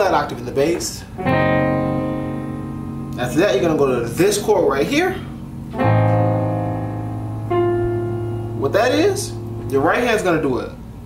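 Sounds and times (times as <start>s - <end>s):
piano chord: 1.2s - 11.0s.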